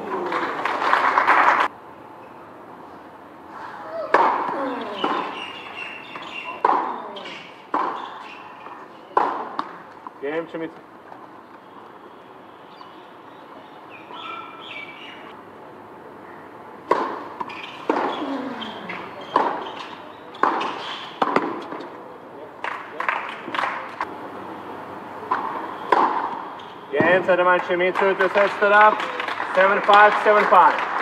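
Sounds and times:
tennis ball hit by rackets: 4.1s - 10.0s, 16.8s - 18.3s, 18.9s - 21.9s, 25.3s - 26.4s.

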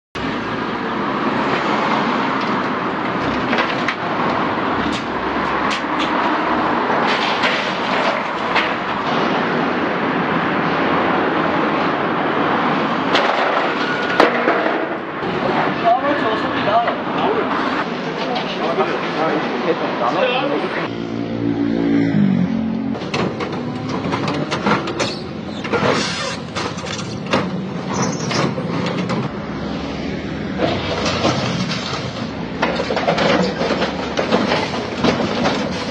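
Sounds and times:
diesel engine under load: 0.2s - 10.6s, 22.2s - 35.9s
street traffic: 0.2s - 35.9s.

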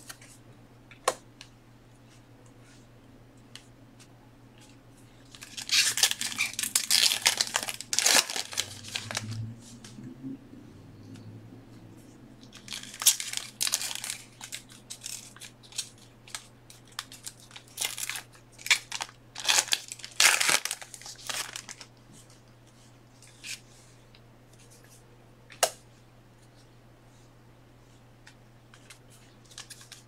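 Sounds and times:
plastic packaging crinkling and tearing: 5.2s - 9.4s, 12.5s - 22.0s, 29.4s - 30.0s
low hum: 6.3s - 16.8s.

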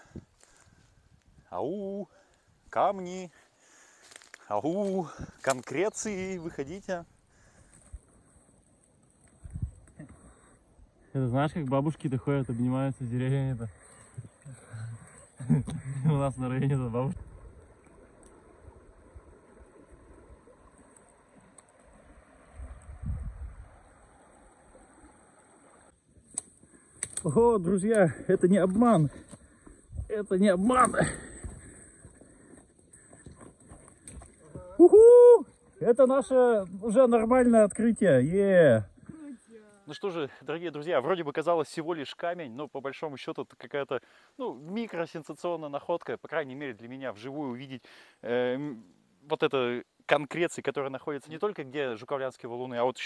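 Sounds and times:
footsteps on leaves and twigs: 3.3s - 6.0s
person shouting: 34.6s - 35.5s.

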